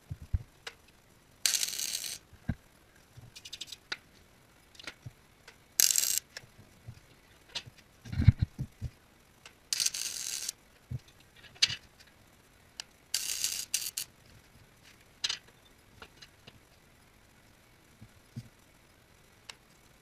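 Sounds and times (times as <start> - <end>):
welder crackling: 1.4 - 2.3, 5.8 - 6.4, 9.4 - 10.6, 12.8 - 14.1.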